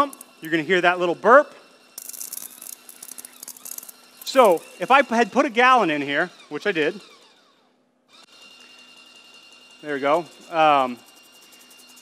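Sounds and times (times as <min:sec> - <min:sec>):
electric pump whining: 0:00.0 - 0:12.0.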